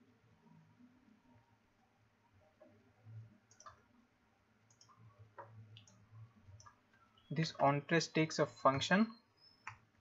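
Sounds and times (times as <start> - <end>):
faint low hum: 0.0 - 10.0
keyboard and mouse clicks: 3.4 - 3.9, 4.7 - 7.7, 9.6 - 9.9.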